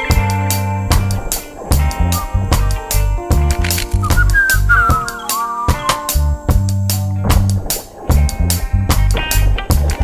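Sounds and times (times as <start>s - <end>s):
high sliding lead melody: 4.0s - 6.4s.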